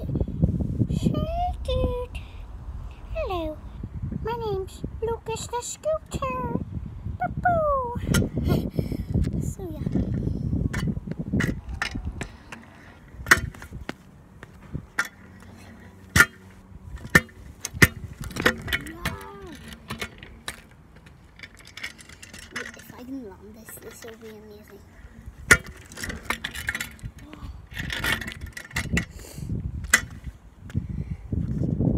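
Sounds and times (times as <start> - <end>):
scooter clicks and clanks: 9.6 - 29.2, 29.8 - 30.3
phone handling rumble: 9.8 - 22.9.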